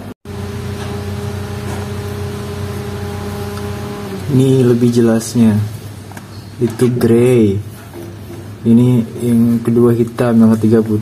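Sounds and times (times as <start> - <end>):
machine hum: 0.0 - 6.1.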